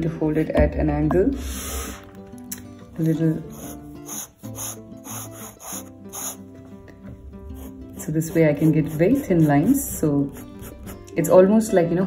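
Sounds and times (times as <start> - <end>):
background music with held notes: 0.0 - 12.0
pen scratching on paper: 3.5 - 6.4, 7.5 - 11.1.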